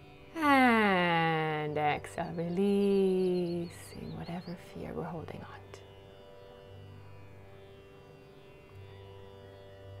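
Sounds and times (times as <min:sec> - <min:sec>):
instrumental drone music: 0:00.0 - 0:10.0.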